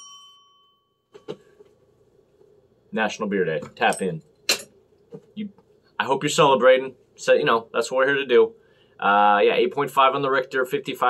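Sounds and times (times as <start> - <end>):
desk bell ringing: 0.0 - 1.6.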